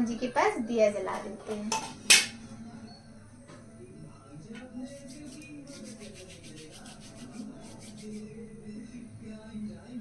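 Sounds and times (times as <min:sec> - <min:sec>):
palms rubbing together: 0:04.8 - 0:08.4.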